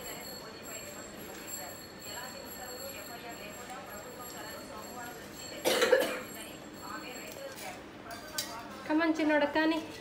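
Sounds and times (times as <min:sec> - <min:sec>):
quiet chatter: 0:00.0 - 0:10.0
child coughing: 0:05.6 - 0:06.3.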